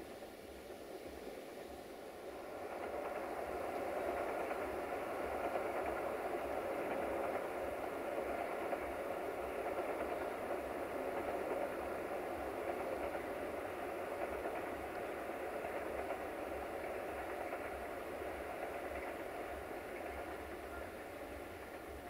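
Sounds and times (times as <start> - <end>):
diesel locomotive running: 0.0 - 22.0.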